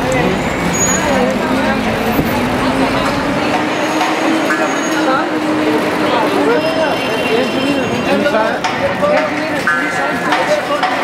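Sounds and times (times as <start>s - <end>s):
vehicle engine humming: 0.0s - 10.7s
crowd voices calling out: 0.0s - 11.0s.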